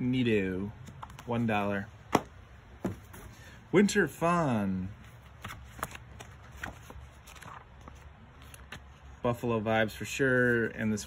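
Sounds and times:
book pages flipping: 0:00.8 - 0:01.5, 0:04.9 - 0:09.2.

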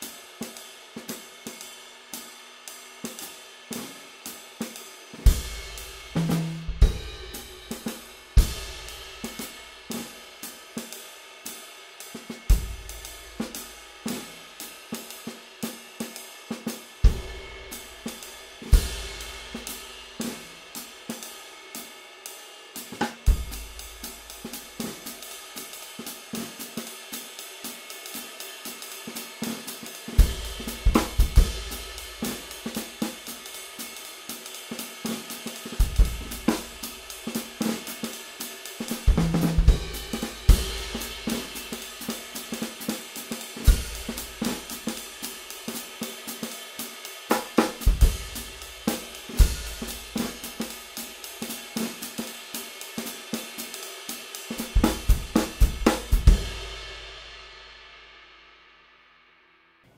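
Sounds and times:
hi-hat: 0:00.0 - 0:58.6
snare drum: 0:03.0 - 0:11.0, 0:12.1 - 0:21.4, 0:22.8 - 0:57.6.

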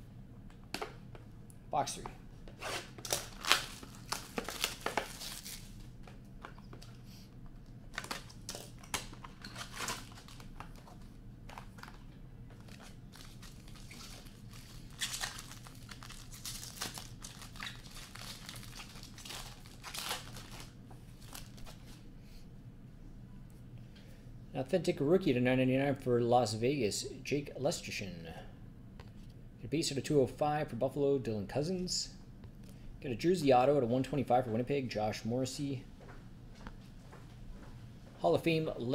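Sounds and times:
plastic wrapping crinkling and tearing: 0:02.7 - 0:05.8, 0:07.9 - 0:21.8.

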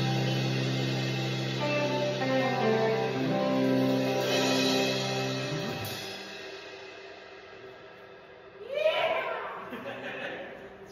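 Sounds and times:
rock band final chord: 0:00.0 - 0:06.8
cymbals ringing: 0:00.0 - 0:08.7.

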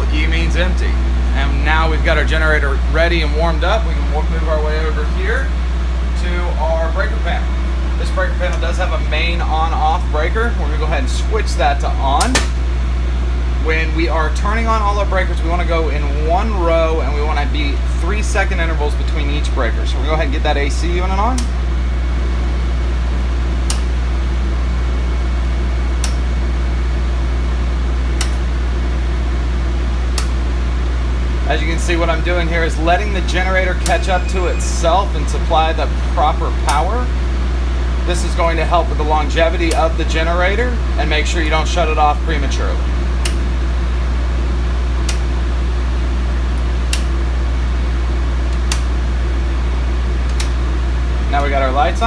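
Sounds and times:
air-conditioning unit: 0:00.0 - 0:52.0
generator humming: 0:00.0 - 0:52.0
circuit breakers clicking: 0:12.0 - 0:12.7, 0:17.6 - 0:21.7, 0:23.5 - 0:24.2, 0:25.4 - 0:26.6, 0:28.0 - 0:28.7, 0:29.8 - 0:30.6, 0:31.5 - 0:37.1, 0:38.1 - 0:43.7, 0:44.7 - 0:49.5, 0:50.1 - 0:52.0.

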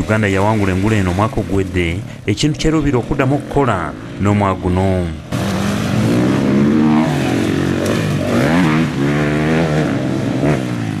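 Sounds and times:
dirt bike engines revving: 0:00.0 - 0:11.0.

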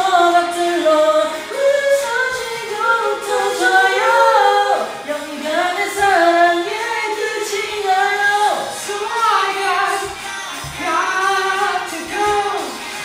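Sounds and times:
voices singing in harmony: 0:00.0 - 0:13.0.

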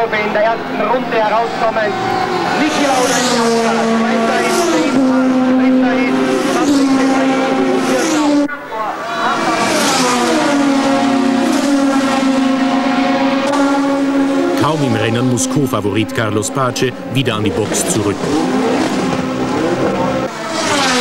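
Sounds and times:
racing car engines at high revs: 0:00.2 - 0:21.0.

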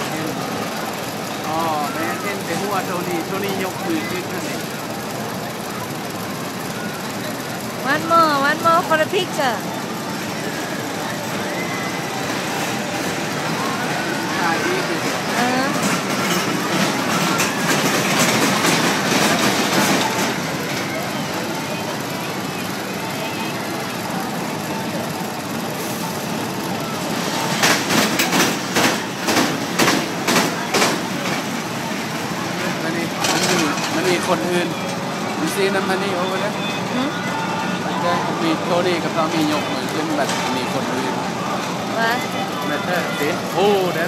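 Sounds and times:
crowd chatter: 0:00.0 - 0:44.0
roller coaster rumbling on track: 0:00.0 - 0:44.0.

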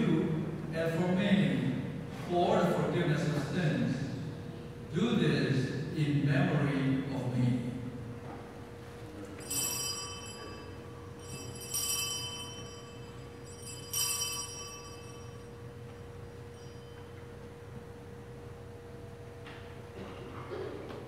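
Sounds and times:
altar bells ringing: 0:09.4 - 0:17.7.

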